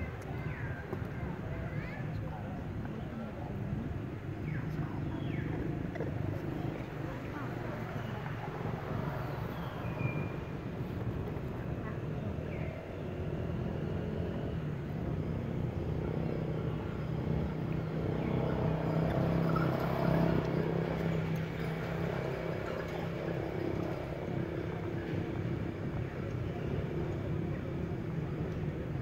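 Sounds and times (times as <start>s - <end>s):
motor vehicle engines humming: 0.0s - 29.0s.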